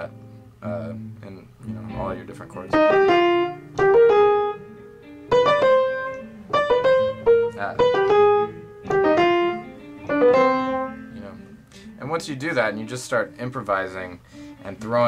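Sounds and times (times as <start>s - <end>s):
piano playing: 1.7s - 13.5s.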